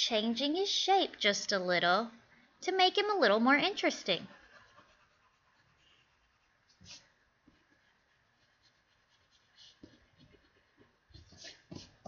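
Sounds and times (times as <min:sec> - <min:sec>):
pencil scratching on paper: 0:04.3 - 0:12.0.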